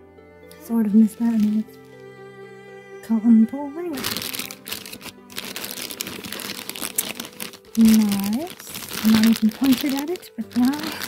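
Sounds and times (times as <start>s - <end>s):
plastic packaging crinkling: 1.0s - 1.8s, 3.9s - 11.0s.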